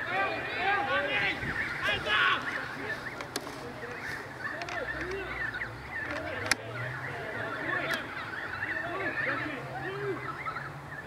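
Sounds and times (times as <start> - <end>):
crowd shouting and calling: 0.0 - 11.0.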